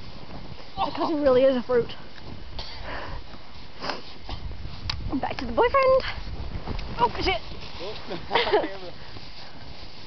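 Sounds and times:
breathy sniffs: 0:02.6 - 0:04.2
wind rumble on microphone: 0:03.2 - 0:08.3.

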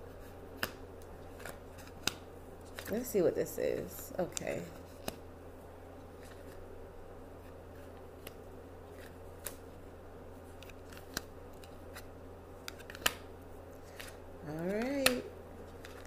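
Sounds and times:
steady low hum: 0:00.0 - 0:16.0
cards snapping on cloth: 0:00.6 - 0:03.0, 0:04.2 - 0:05.2, 0:08.1 - 0:09.6, 0:10.6 - 0:16.0.

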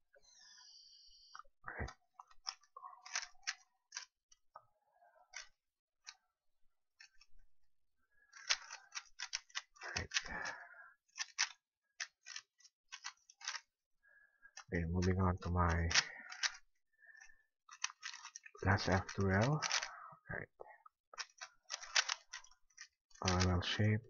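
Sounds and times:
puzzle cube layers clicking: 0:02.1 - 0:04.2, 0:08.3 - 0:13.7, 0:14.5 - 0:16.7, 0:17.7 - 0:19.9, 0:21.2 - 0:24.0.

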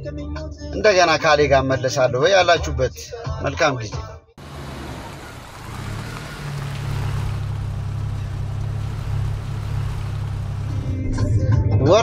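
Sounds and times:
car engine and road noise: 0:04.4 - 0:11.4.

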